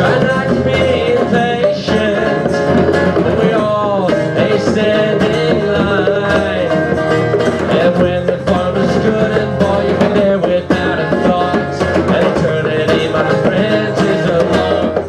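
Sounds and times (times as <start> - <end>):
acoustic guitar strumming: 0.0 - 15.0
man singing: 0.0 - 15.0.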